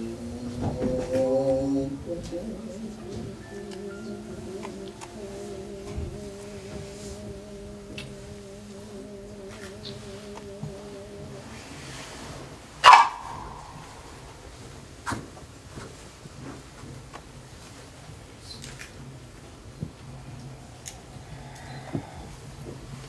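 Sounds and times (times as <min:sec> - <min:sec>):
wavering held vocal call: 0:00.0 - 0:14.6.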